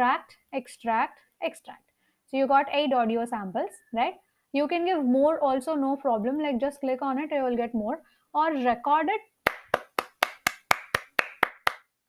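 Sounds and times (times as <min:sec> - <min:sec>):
person clapping hands: 0:09.4 - 0:12.0.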